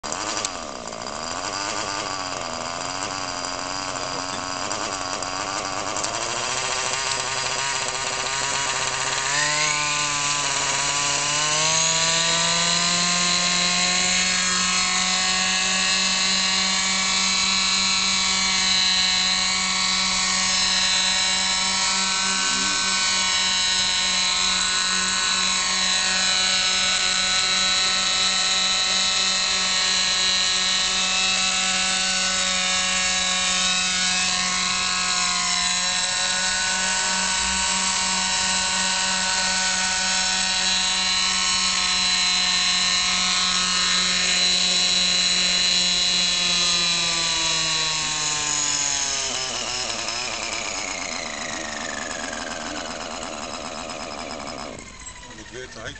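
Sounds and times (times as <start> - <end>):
small nitro engine running: 0.0 - 55.9.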